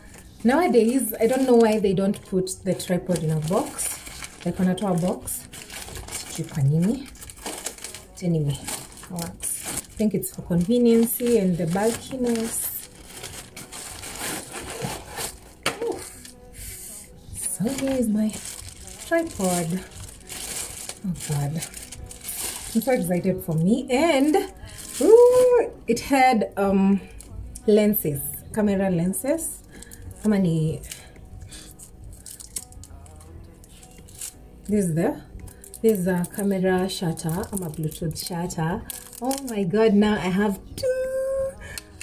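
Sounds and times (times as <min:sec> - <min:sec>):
plastic accessories handling: 0:00.0 - 0:16.4, 0:17.4 - 0:23.1, 0:24.2 - 0:25.7, 0:30.8 - 0:34.4, 0:37.1 - 0:38.2, 0:38.8 - 0:39.6
plastic packaging crinkling: 0:00.0 - 0:16.4, 0:17.4 - 0:23.6, 0:24.2 - 0:25.7, 0:29.6 - 0:34.4, 0:35.4 - 0:39.7
cloth pouch rustling: 0:03.1 - 0:16.4, 0:17.4 - 0:23.1, 0:24.2 - 0:25.7.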